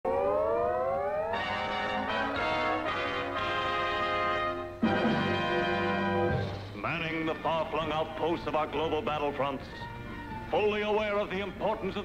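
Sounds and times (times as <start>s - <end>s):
brass orchestral music: 1.3s - 7.9s.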